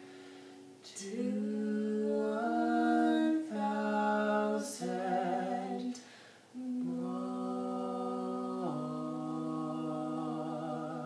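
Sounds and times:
man and woman singing harmony: 0.9s - 11.0s.

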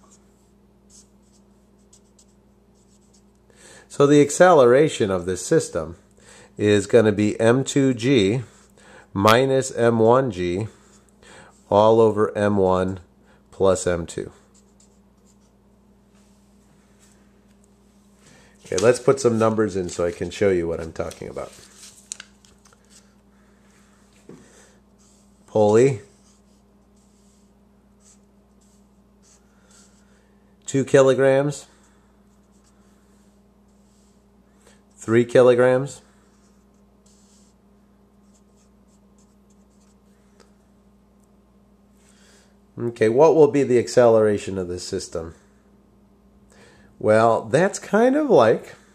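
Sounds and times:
faint steady hum: 0.0s - 48.9s
marker scratching on paper: 0.4s - 3.3s, 14.4s - 15.6s, 25.0s - 30.1s, 32.3s - 34.3s, 36.3s - 37.6s, 38.2s - 40.0s.

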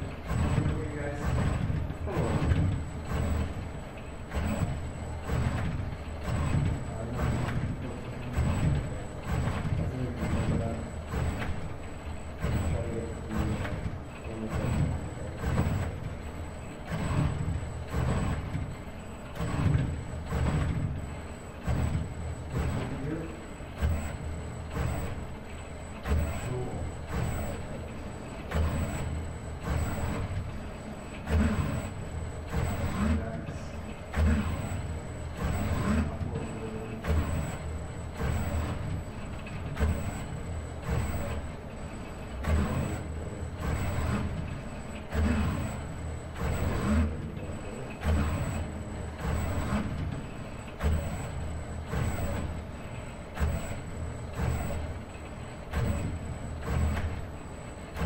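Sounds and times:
robot arm motors whirring: 0.0s - 58.0s.

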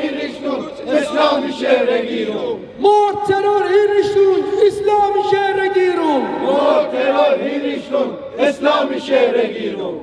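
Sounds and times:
protesters chanting: 0.0s - 2.6s, 6.2s - 10.0s.

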